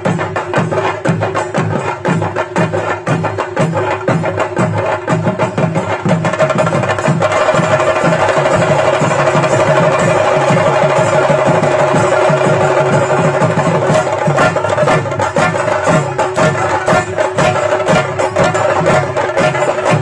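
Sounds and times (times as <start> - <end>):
drums beaten in steady rhythm: 0.0 - 20.0.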